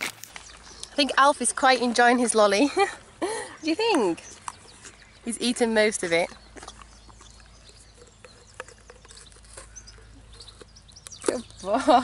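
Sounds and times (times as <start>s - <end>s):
bird chirping: 0.2s - 12.0s
pony crunching ice lolly: 4.3s - 11.6s.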